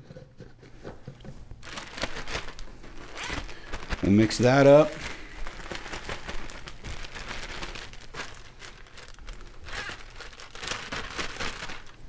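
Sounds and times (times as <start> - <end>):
plastic bag crinkling: 1.5 - 12.0.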